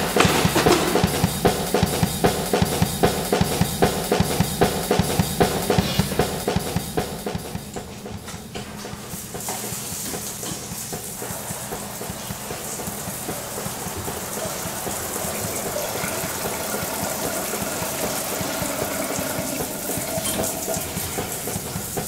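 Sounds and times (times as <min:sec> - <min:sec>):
shower spray on tiled floor: 0:00.0 - 0:03.5, 0:04.1 - 0:22.0.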